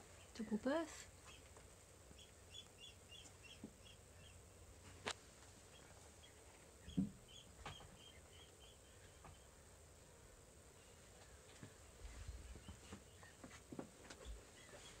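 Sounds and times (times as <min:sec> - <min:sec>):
faint bird chirping: 0:00.0 - 0:04.8, 0:05.6 - 0:09.8, 0:10.7 - 0:15.0.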